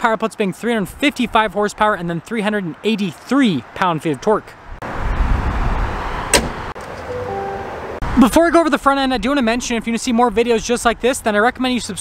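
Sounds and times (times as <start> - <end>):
truck hood slamming shut: 6.3 - 6.7.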